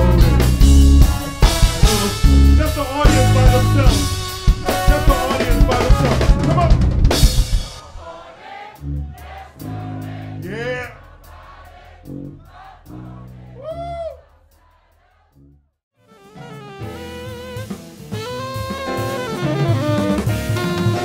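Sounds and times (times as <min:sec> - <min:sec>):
brass band music: 0:00.0 - 0:21.0.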